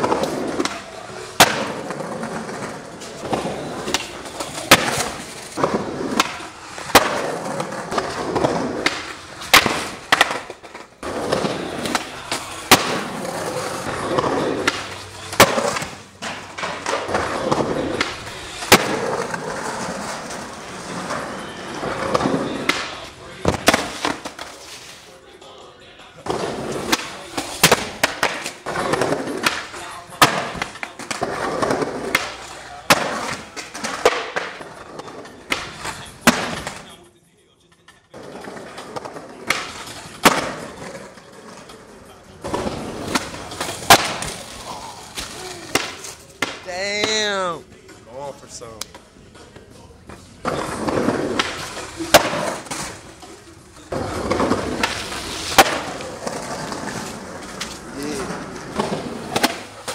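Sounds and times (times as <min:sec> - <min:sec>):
skateboards slapping down on concrete: 0:00.0 - 0:24.9, 0:26.1 - 0:37.0, 0:38.1 - 0:47.5, 0:48.8 - 0:59.9
skateboard tails clacking: 0:00.0 - 0:25.0, 0:25.7 - 0:37.0, 0:37.8 - 0:48.1, 0:48.8 - 0:59.9
skateboard wheels rolling on concrete: 0:00.0 - 0:37.0, 0:37.7 - 0:59.9.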